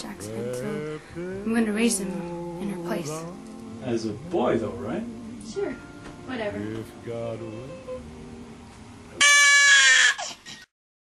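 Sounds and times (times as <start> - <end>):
baby crying: 9.2 - 10.7.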